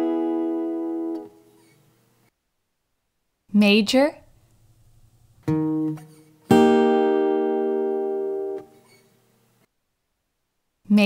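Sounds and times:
guitar chord ringing: 0.0s - 1.4s, 5.4s - 8.7s.

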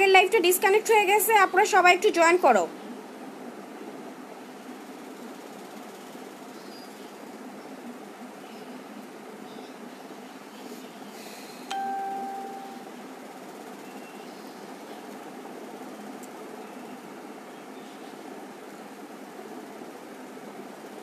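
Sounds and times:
low background hum: 0.0s - 21.0s
ding: 11.7s - 13.0s.

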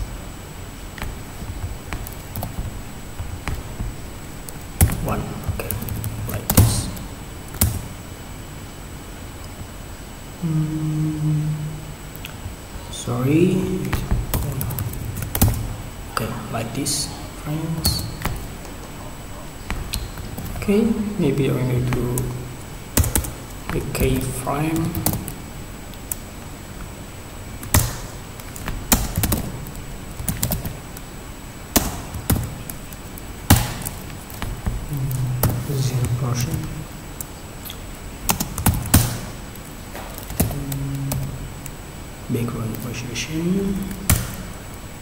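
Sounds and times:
man humming: 10.4s - 12.1s, 34.8s - 36.8s, 40.4s - 41.6s
computer keyboard keystrokes: 23.0s - 25.4s, 27.6s - 31.0s, 38.3s - 39.3s.

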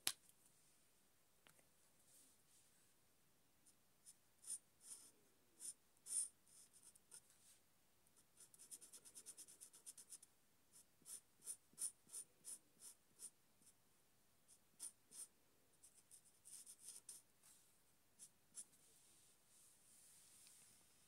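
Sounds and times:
marker pen rubbing on paper: 15.9s - 17.2s.

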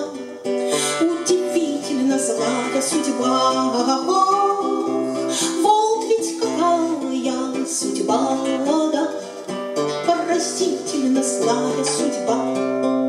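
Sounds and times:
strummed acoustic guitar: 0.0s - 13.0s
woman singing: 0.0s - 13.0s.

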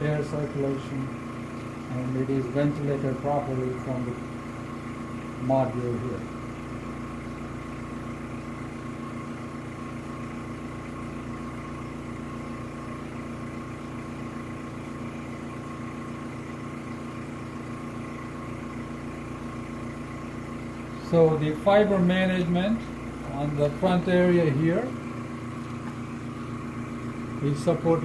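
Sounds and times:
machinery hum: 0.0s - 28.0s.

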